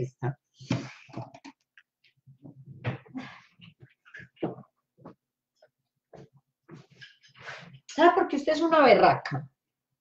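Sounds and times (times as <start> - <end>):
woman breathing and throat sounds: 2.5 - 4.4.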